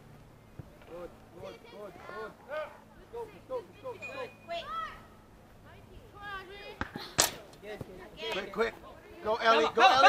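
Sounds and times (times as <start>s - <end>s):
voices calling: 0.0s - 10.0s.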